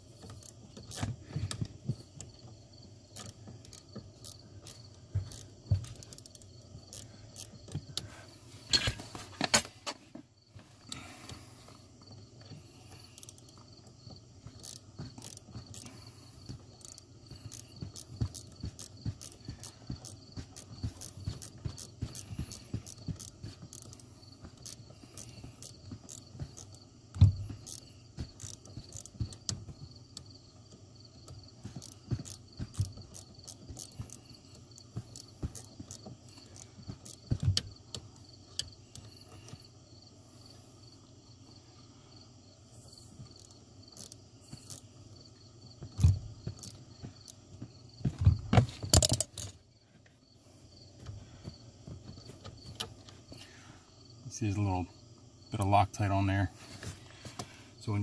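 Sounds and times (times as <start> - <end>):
hand ratchet clicking: 0.1 - 2.5, 3.1 - 8.1, 12.4 - 39.6, 43.2 - 44.9, 45.8 - 47.4, 48.8 - 49.6.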